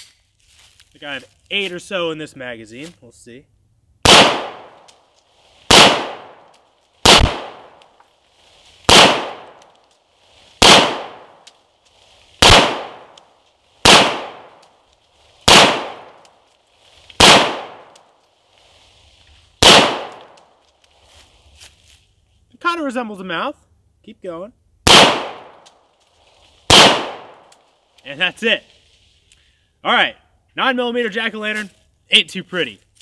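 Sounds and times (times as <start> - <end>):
handgun shots with echo: 4.1 - 4.8, 5.7 - 6.4, 7.1 - 7.8, 8.9 - 9.6, 10.6 - 11.3, 12.4 - 13.2, 13.9 - 14.6, 15.5 - 16.1, 17.2 - 17.9, 19.6 - 20.3, 24.9 - 25.6, 26.7 - 27.4.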